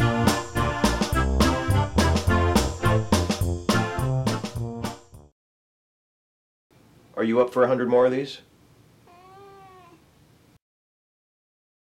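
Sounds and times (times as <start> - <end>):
cat meowing: 9.0 - 10.1.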